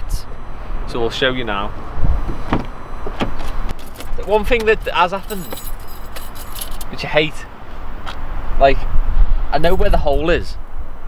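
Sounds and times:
car door thump: 0:02.1 - 0:04.7.

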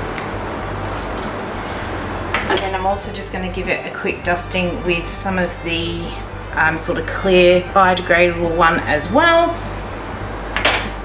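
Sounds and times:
steady low hum: 0:00.0 - 0:11.0
woman speaking: 0:02.5 - 0:09.6.

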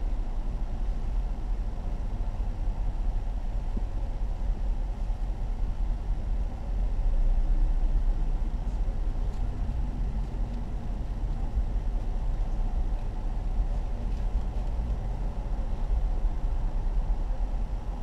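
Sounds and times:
car engine rumble from inside cabin: 0:00.0 - 0:18.0.

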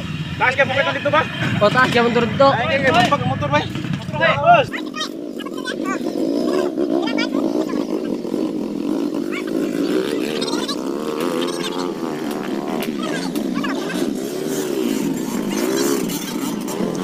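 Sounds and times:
motorcycle engine revving hard: 0:00.0 - 0:17.0.

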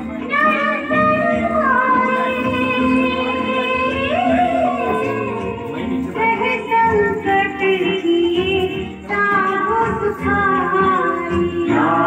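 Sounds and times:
high voice singing: 0:00.0 - 0:12.0
instrumental backing: 0:00.0 - 0:12.0.

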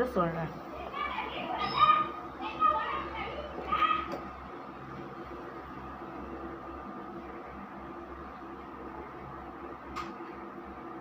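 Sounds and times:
children's high-pitched calls: 0:00.7 - 0:04.2.

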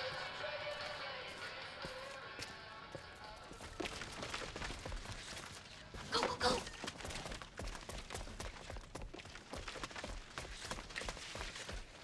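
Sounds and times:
footsteps running on concrete: 0:00.7 - 0:12.0.

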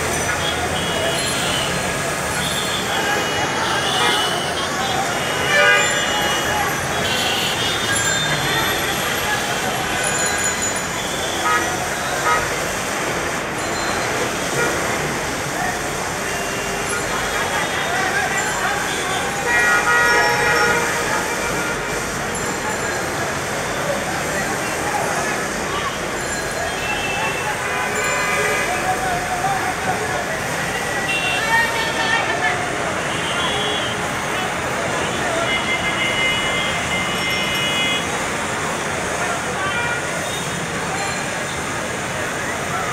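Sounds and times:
city traffic noise: 0:00.0 - 0:42.9
vehicle horns honking: 0:00.3 - 0:10.2, 0:11.0 - 0:12.9, 0:14.5 - 0:15.1, 0:16.2 - 0:22.3, 0:26.7 - 0:29.0, 0:30.7 - 0:38.4.

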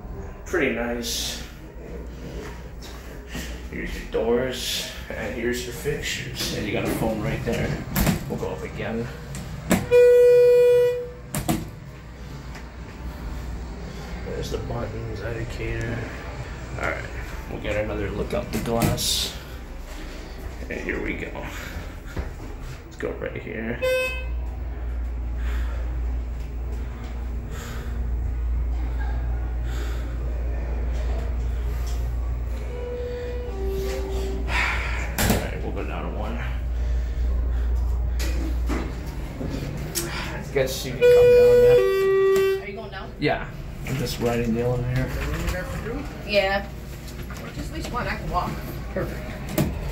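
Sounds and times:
low elevator hum: 0:00.0 - 0:49.9
elevator electronic beep: 0:09.8 - 0:11.2, 0:32.6 - 0:34.5
elevator doors opening: 0:30.8 - 0:35.8.

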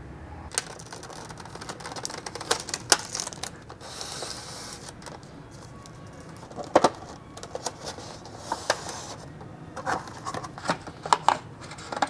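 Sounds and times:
cardboard box clicks and crackles: 0:00.5 - 0:03.8
packaging rustle: 0:00.5 - 0:12.0.

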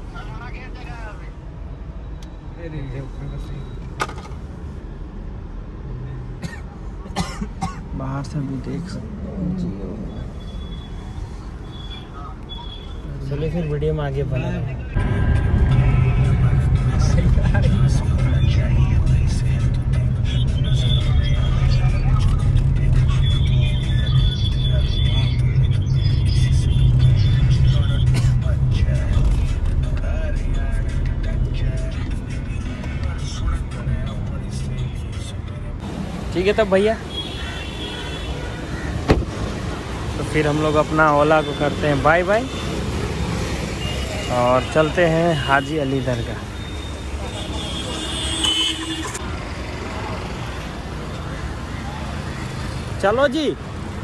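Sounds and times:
car driving rumble: 0:05.7 - 0:43.9.

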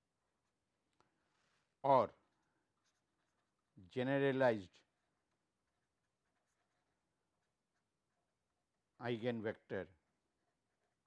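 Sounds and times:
man speaking: 0:01.8 - 0:02.2, 0:03.8 - 0:04.8, 0:09.0 - 0:09.9.

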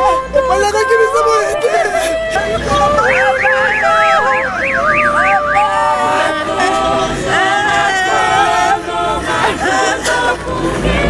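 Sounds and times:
electronic siren yelping: 0:00.0 - 0:08.0
voices singing and wailing: 0:00.0 - 0:11.0.

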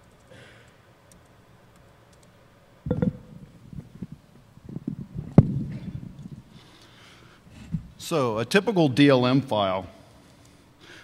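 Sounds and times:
sharp knock: 0:02.9 - 0:03.3
microphone handling thumps: 0:02.9 - 0:03.5.

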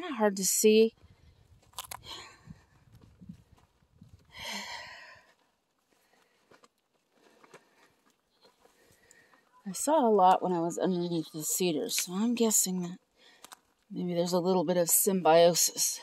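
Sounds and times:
footsteps crunching on dry grass: 0:02.9 - 0:04.3.

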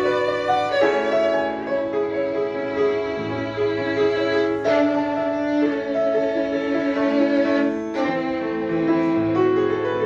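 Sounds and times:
piano accompaniment: 0:00.0 - 0:10.0
violin bowing slow melody: 0:00.0 - 0:10.0.

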